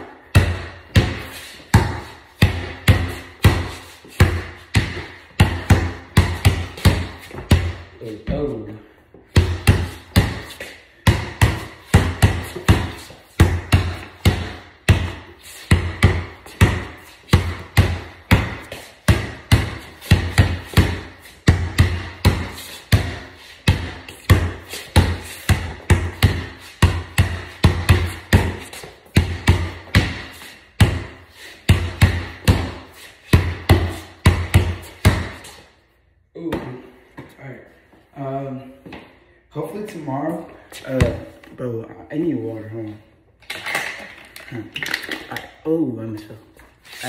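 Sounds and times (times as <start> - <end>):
basketball bouncing on hard floor: 0.2 - 8.5, 9.3 - 35.6, 40.9 - 41.3.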